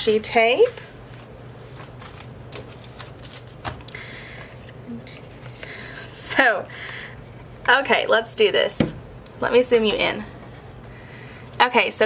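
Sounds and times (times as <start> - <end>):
tape rolls clicking and tapping: 1.1 - 4.0.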